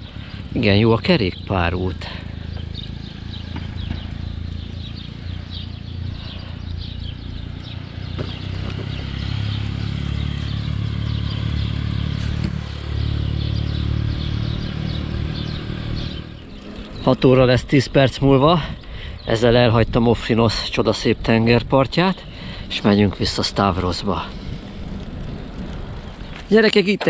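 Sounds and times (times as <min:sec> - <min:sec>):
road noise: 0:00.0 - 0:27.0
wind rumbling on microphone: 0:02.2 - 0:27.0.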